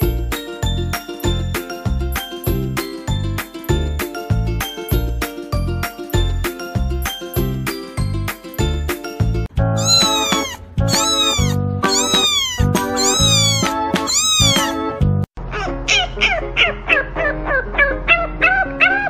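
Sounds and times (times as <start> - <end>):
music: 0.0 - 19.0
kitten meowing: 9.8 - 14.8
puppy yipping and whining: 9.8 - 14.8, 15.5 - 19.0.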